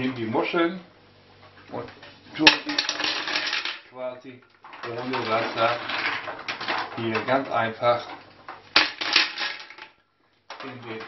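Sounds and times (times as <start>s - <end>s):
mussel shells clattering in metal pot: 1.8s - 11.0s.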